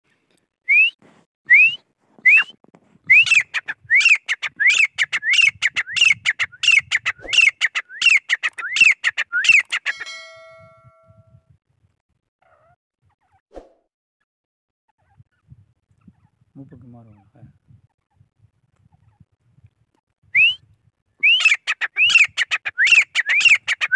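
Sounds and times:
ringing tone: 0:09.9 - 0:11.4
francolin whistled calls: 0:21.2 - 0:23.6.

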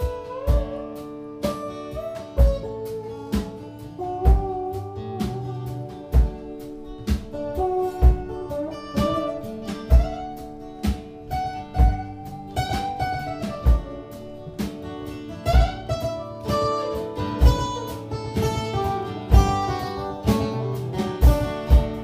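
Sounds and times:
acoustic guitar strumming: 0:00.0 - 0:22.0
sliding lead melody: 0:00.0 - 0:22.0
low thump on the beat: 0:06.1 - 0:14.0.

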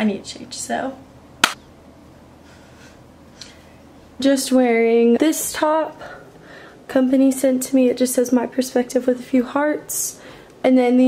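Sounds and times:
finger snap: 0:01.4 - 0:01.6.

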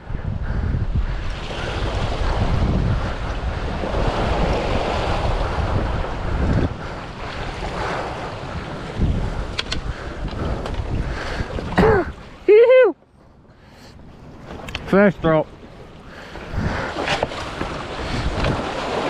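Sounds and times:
wind buffeting microphone: 0:00.0 - 0:12.6, 0:13.2 - 0:19.0
small waves washing against rocks: 0:01.3 - 0:12.4, 0:14.5 - 0:19.0.

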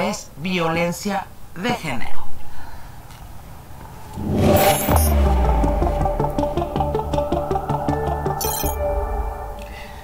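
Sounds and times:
rising whoosh: 0:03.7 - 0:08.4
deep bass hit: 0:04.1 - 0:09.4.

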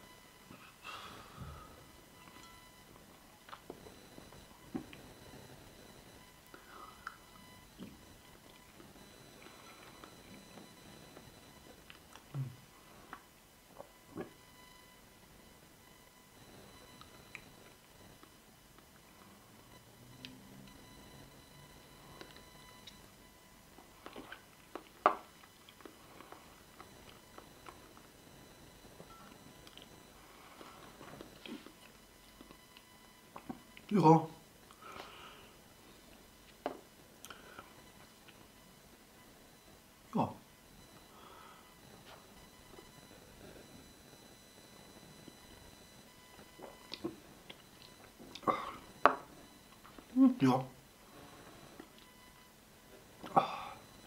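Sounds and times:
person breathing: 0:00.6 - 0:01.8, 0:06.5 - 0:07.2, 0:34.7 - 0:35.6, 0:41.1 - 0:41.8
mouth smacks and clicks while eating: 0:23.8 - 0:28.1, 0:31.1 - 0:33.9, 0:46.3 - 0:49.0.

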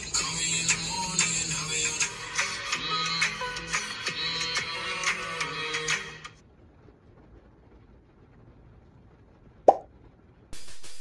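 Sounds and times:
sharp pop sound effect: 0:09.7 - 0:09.9.

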